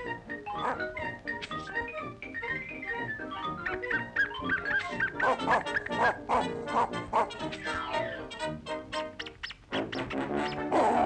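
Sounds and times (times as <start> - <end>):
cartoon band music: 0.0 - 11.0
cartoon dog yapping: 4.4 - 8.4, 10.6 - 11.0.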